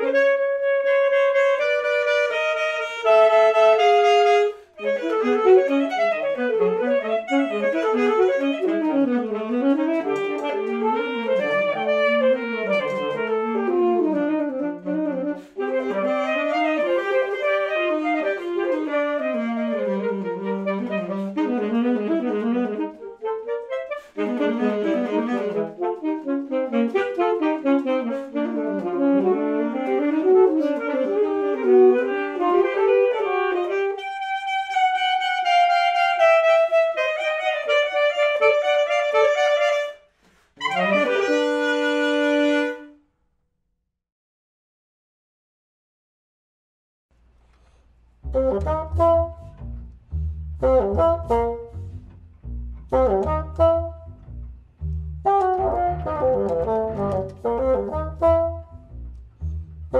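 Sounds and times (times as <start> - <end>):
saxophone duet: 0.0 - 43.0, 48.2 - 59.9.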